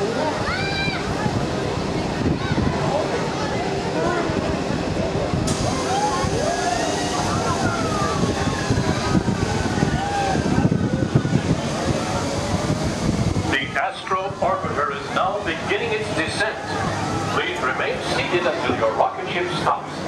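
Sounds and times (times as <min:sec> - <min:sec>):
wind buffeting microphone: 0:00.0 - 0:17.3
faint voices: 0:00.0 - 0:20.0.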